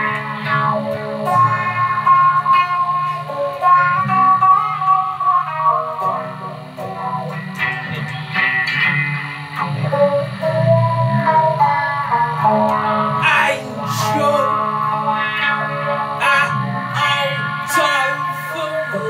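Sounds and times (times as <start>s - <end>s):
electric guitar through small amplifier: 0.0s - 19.0s.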